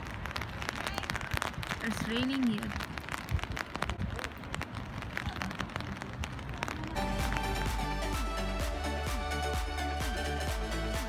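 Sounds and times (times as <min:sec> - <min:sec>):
rain falling: 0:00.0 - 0:11.0
electronic music with beat: 0:07.0 - 0:11.0.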